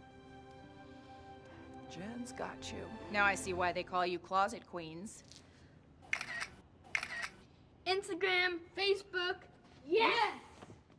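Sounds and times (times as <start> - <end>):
camera shutter clicks: 6.1 - 7.4.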